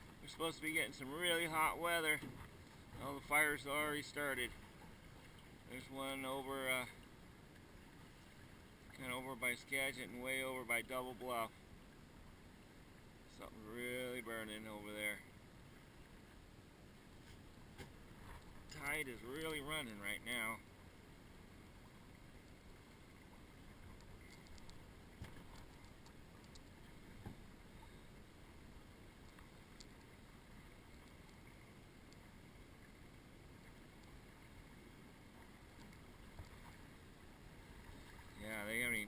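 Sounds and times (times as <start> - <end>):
small waves lapping against hull: 0.0 - 39.0.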